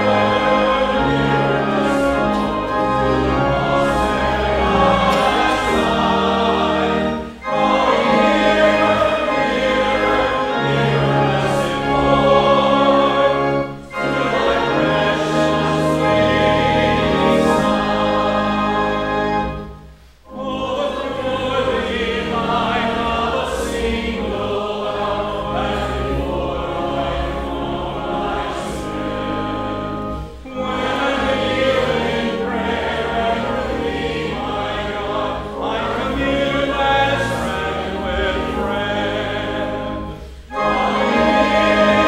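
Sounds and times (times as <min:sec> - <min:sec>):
group singing a hymn: 0:00.0 - 0:42.0.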